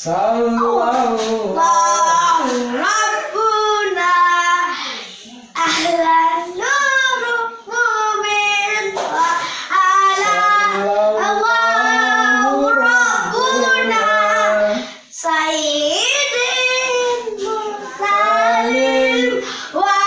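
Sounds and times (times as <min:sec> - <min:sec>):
children singing devotional song: 0:00.0 - 0:20.0.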